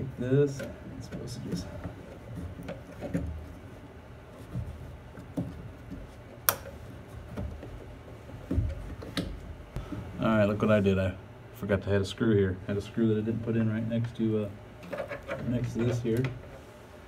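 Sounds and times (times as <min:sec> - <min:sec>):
dull thumps: 0:04.4 - 0:10.1.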